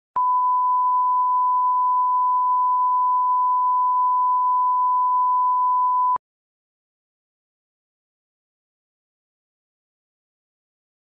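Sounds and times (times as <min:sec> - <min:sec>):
sine-wave test tone: 0:00.2 - 0:06.2.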